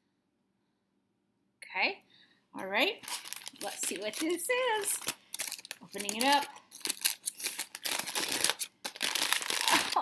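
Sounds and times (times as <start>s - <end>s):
foil gift wrap crinkling and tearing: 3.0s - 10.0s.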